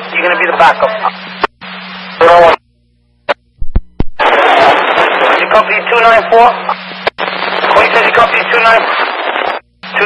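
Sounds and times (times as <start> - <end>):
radio dispatch speech: 0.0 - 1.3, 2.1 - 2.6, 4.2 - 10.0
low hum: 0.0 - 8.4, 9.0 - 10.0.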